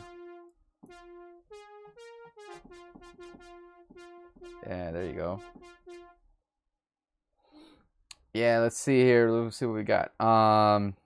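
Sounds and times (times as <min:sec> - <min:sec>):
brassy sawtooth synth lead: 0:00.0 - 0:06.2.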